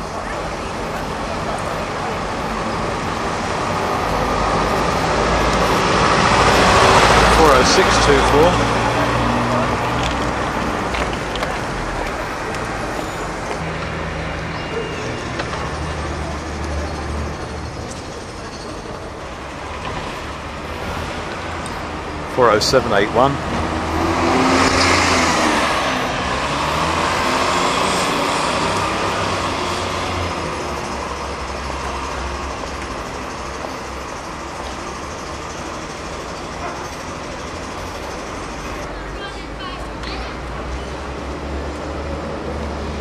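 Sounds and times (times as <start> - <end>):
bus passing: 0.0 - 43.0
road traffic: 0.0 - 43.0.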